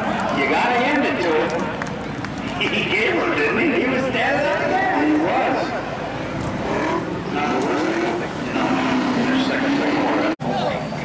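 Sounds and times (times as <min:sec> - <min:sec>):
race car engines: 0:00.0 - 0:11.0.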